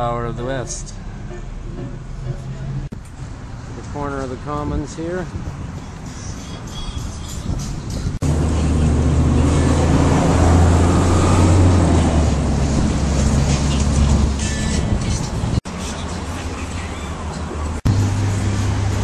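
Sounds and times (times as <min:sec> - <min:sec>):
deep bus engine hum: 0:00.0 - 0:03.8, 0:05.2 - 0:19.0
city street traffic: 0:00.0 - 0:19.0.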